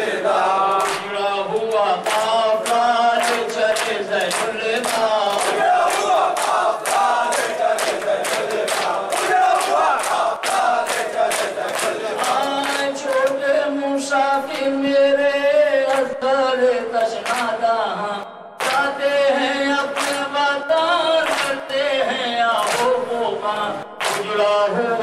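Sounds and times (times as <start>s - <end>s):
men chanting a lament: 0.0s - 25.0s.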